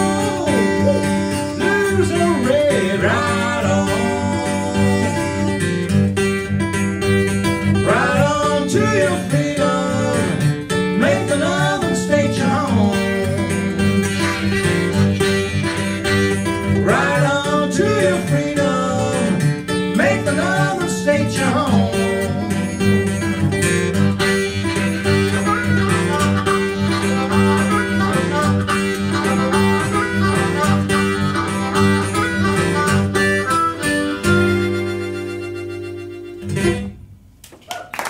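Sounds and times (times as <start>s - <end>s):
harmonica bent notes: 0.0s - 37.0s
acoustic guitar strumming: 0.0s - 37.3s.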